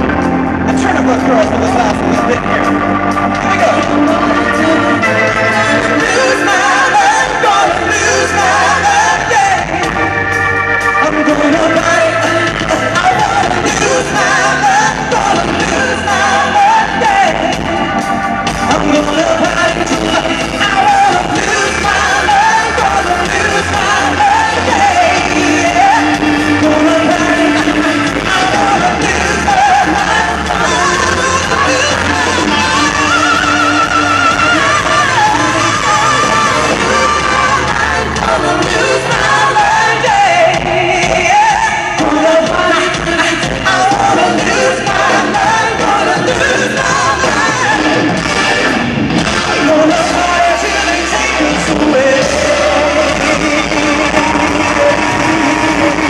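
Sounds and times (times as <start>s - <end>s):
man singing with vibrato: 0.0s - 56.0s
pop-rock band playing: 0.0s - 56.0s.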